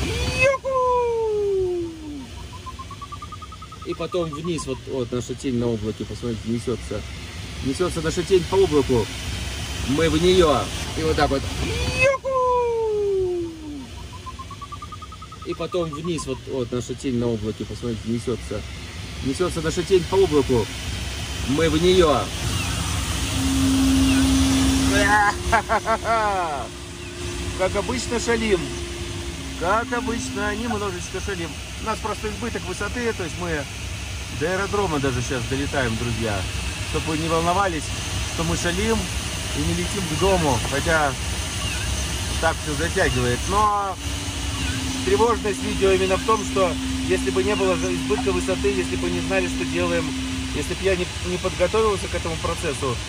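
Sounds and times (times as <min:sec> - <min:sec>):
person exclaiming and laughing: 0:00.0 - 0:02.3, 0:11.6 - 0:13.9, 0:24.9 - 0:26.8
tone sliding down in pitch: 0:00.0 - 0:04.9, 0:21.5 - 0:33.6, 0:42.5 - 0:52.8
rapid short high beeps: 0:02.2 - 0:05.0, 0:13.9 - 0:16.6, 0:42.8 - 0:52.4.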